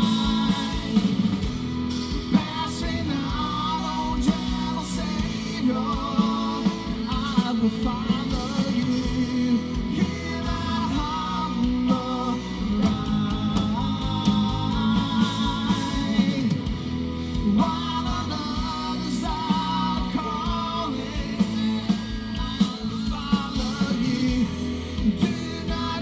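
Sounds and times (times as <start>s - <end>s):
bass guitar: 0.0s - 26.0s
drums: 0.0s - 26.0s
electric guitars: 0.0s - 26.0s
person singing: 0.0s - 26.0s.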